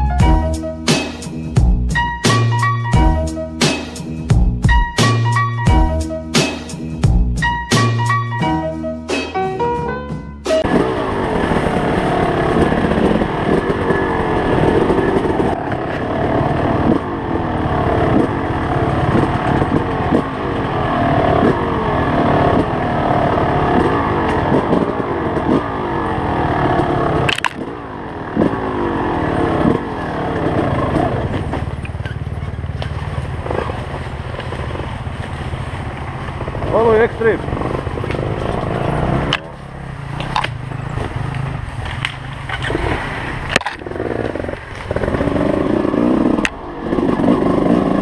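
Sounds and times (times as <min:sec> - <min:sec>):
dirt bike engine revving: 0:10.6 - 0:48.0.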